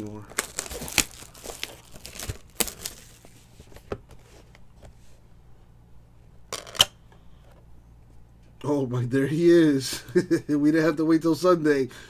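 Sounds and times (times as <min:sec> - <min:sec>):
plastic shrink-wrap crinkling and tearing: 0:00.0 - 0:03.3.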